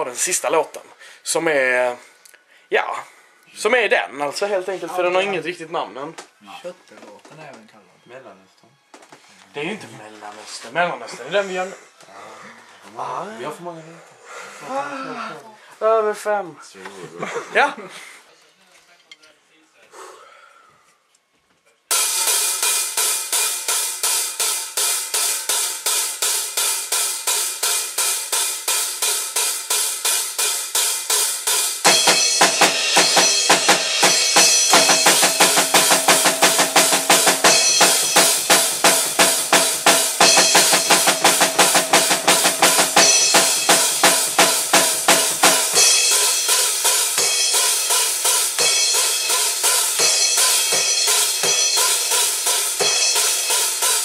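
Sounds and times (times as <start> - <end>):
acoustic drum kit: 21.9 - 54.0.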